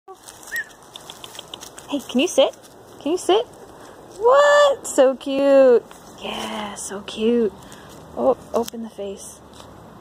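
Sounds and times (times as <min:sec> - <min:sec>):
footsteps on dry leaves and gravel: 0:00.1 - 0:04.3, 0:05.8 - 0:09.7.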